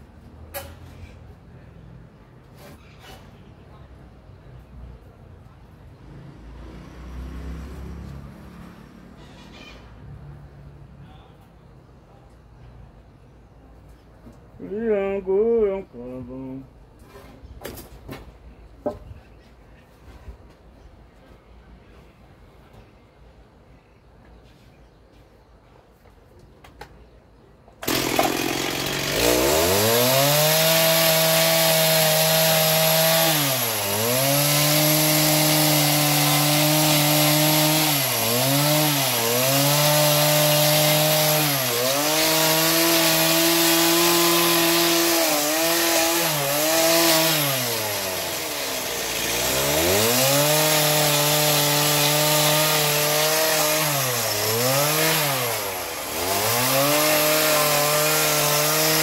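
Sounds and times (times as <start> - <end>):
chainsaw cutting wooden boards: 27.8 - 59.0.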